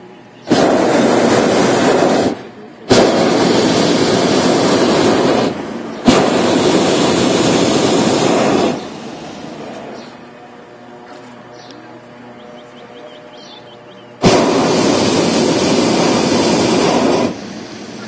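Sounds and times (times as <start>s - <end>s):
propane burner blasts: 0.0s - 12.1s, 12.7s - 18.0s.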